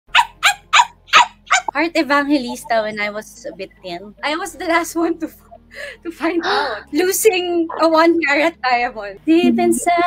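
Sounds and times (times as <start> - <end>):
woman speaking: 1.7 - 10.0.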